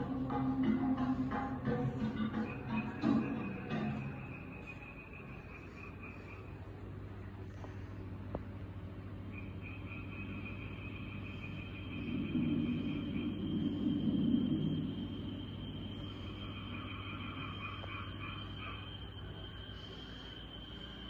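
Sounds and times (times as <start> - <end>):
steady high tone: 0.0 - 6.7, 9.4 - 21.0
low hum: 0.0 - 21.0
low-pitched rumble: 10.2 - 20.2.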